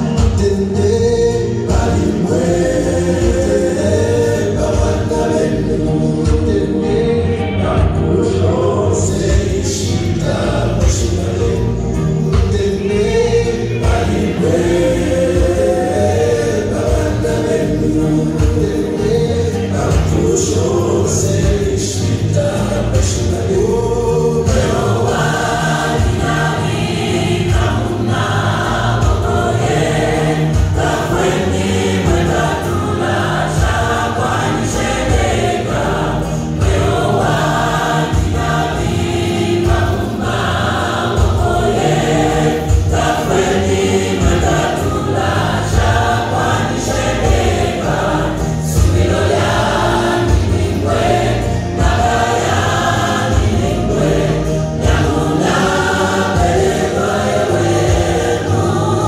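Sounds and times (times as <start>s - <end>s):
gospel choir singing over a beat: 0.0s - 59.0s.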